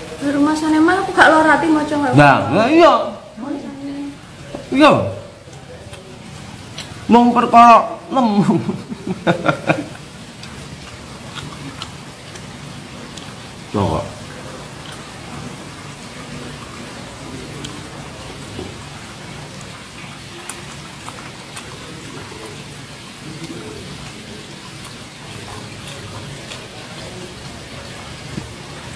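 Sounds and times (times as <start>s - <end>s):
steady background hiss: 0.0s - 28.9s
faint low murmuring voices: 4.1s - 7.1s.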